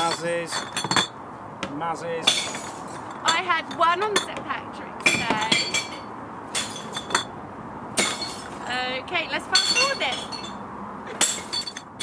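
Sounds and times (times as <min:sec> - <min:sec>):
glass bottles clinking: 0:00.0 - 0:01.2, 0:02.2 - 0:04.4, 0:05.0 - 0:07.4, 0:08.0 - 0:08.7, 0:09.5 - 0:12.0.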